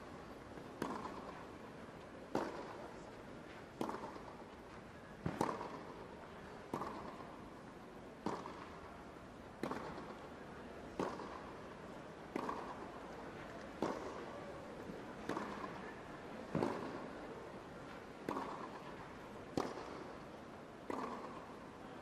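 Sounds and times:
faint arena hum: 0.0 - 22.0
tennis ball struck by rackets: 0.6 - 1.5, 2.3 - 2.8, 3.7 - 4.5, 5.2 - 5.9, 6.7 - 7.2, 8.2 - 8.8, 9.6 - 10.2, 10.9 - 17.1, 17.9 - 21.6.

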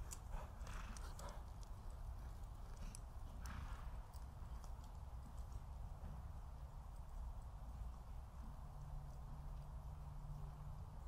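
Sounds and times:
horse hoofbeats on soft dirt: 0.0 - 11.0.

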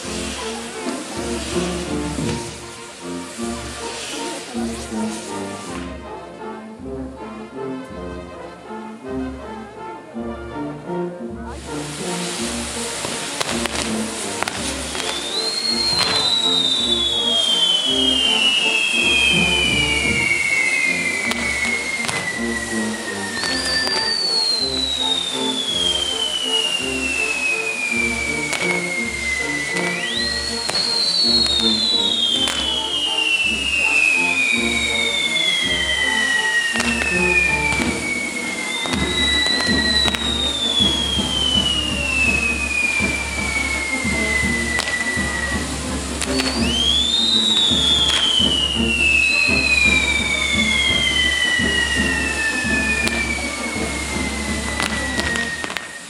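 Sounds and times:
firework pops: 0.0 - 6.1, 11.7 - 56.0
whistling fireworks: 0.0 - 6.1, 11.6 - 56.0
music with steady beat: 11.9 - 56.0.

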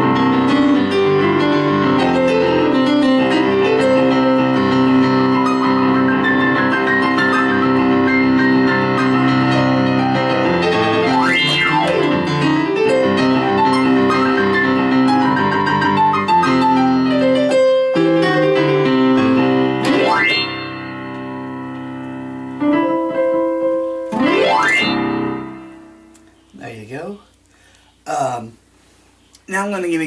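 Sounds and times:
digital piano playing chords: 0.0 - 26.9.

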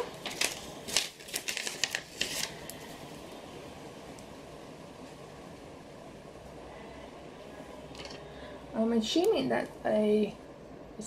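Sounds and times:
faint steady hiss: 0.0 - 11.0.

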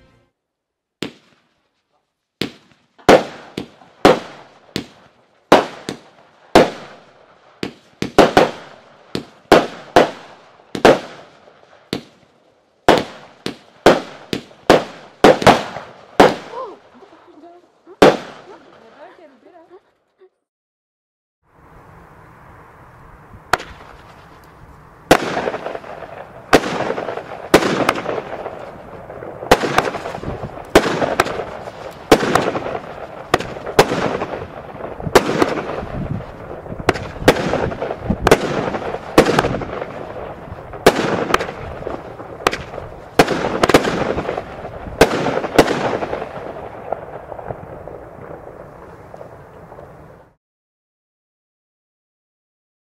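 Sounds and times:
firework bangs with rushing trail: 1.0 - 1.6, 2.4 - 16.9, 18.0 - 19.2, 23.5 - 24.4, 25.0 - 50.3.

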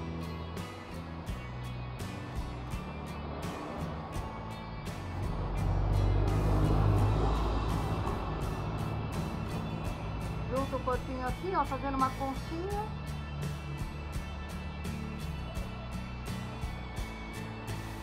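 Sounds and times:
background music with steady beat: 0.0 - 18.0
low rumble: 2.6 - 12.3.

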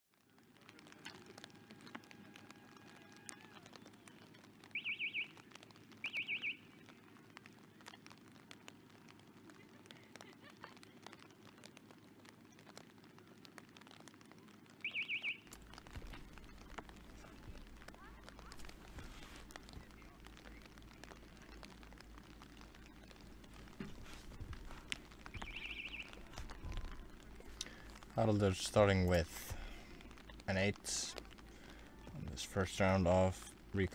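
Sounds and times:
faint rain patter: 0.1 - 33.9
whistle trilling: 6.0 - 6.7, 25.3 - 26.2.

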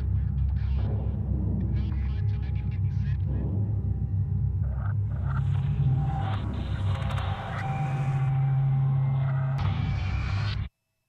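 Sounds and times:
deep rumbling drone: 0.0 - 10.0.

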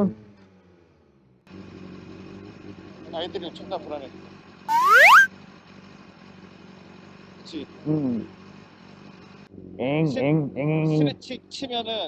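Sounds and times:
rising whistle-like swoop: 4.7 - 5.3.

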